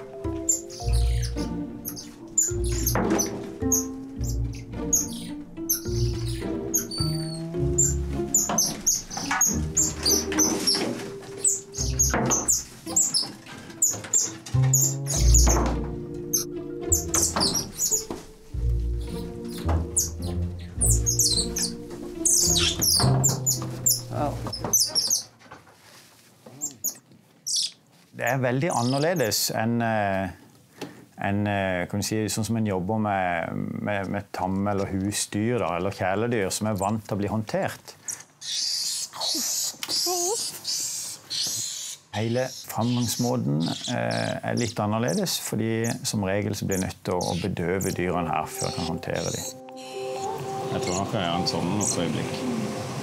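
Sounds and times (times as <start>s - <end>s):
high-pitched chirps: 0.4s - 15.6s, 16.3s - 18.1s, 19.0s - 24.0s, 47.3s - 52.0s.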